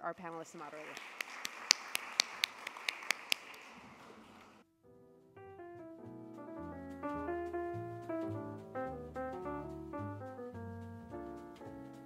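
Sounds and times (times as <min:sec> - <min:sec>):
room applause: 0:00.6 - 0:04.6
person clapping close to microphone: 0:00.7 - 0:04.6.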